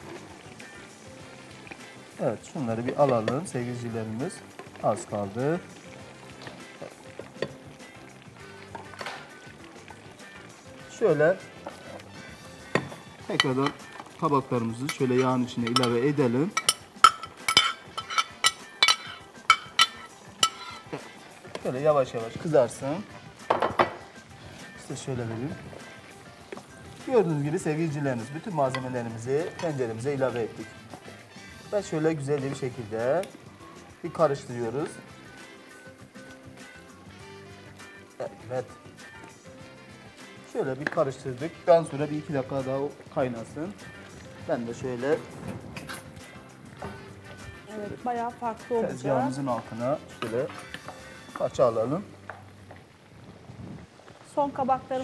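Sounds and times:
background music: 0.0 - 55.0
wooden spoon scraping a pot: 11.4 - 22.8
utensil clinking against container: 14.8 - 20.9.

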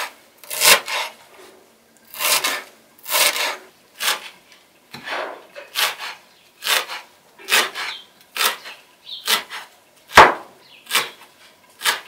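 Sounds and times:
knife chopping herbs on wooden board: 9.2 - 11.2.

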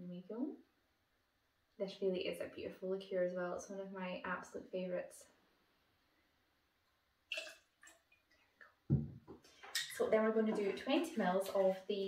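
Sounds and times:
liquid splashing into shaker: 7.3 - 8.2
object thumping on counter: 8.9 - 9.4.

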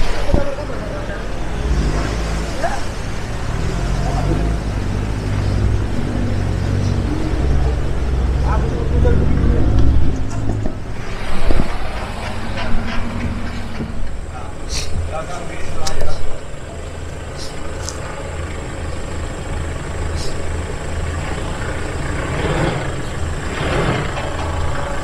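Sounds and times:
vehicle engine driving on dirt track: 0.0 - 25.0
knocks and clatters: 9.7 - 14.4, 21.1 - 25.0.

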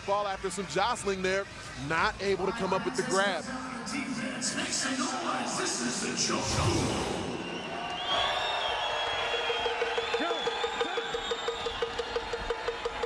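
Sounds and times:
crowd noise: 0.0 - 13.0.

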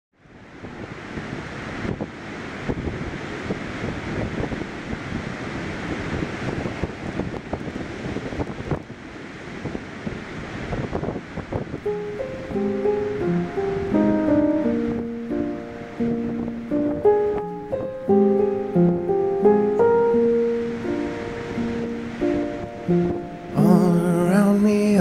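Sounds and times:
gusty wind buffeting microphone: 0.2 - 24.3.

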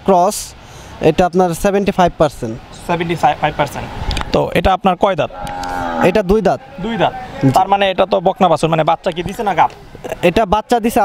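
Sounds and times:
cattle mooing: 5.3 - 6.4.

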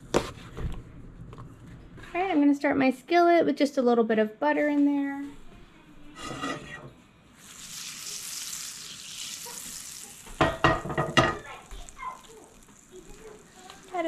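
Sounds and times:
skillet scraping on metal grate: 6.1 - 6.9
butter sizzling in a skillet: 7.4 - 14.0.

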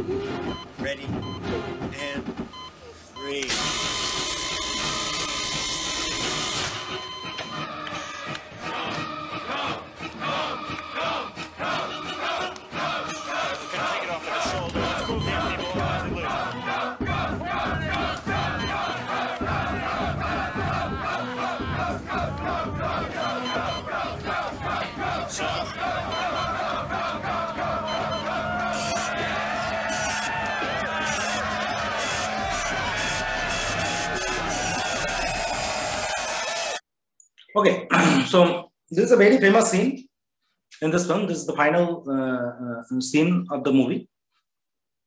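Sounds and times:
loud electric buzz: 3.5 - 7.0, 29.9 - 30.4, 31.0 - 36.8
film music: 3.5 - 36.8
crowd shouting and cheering: 7.4 - 36.8.

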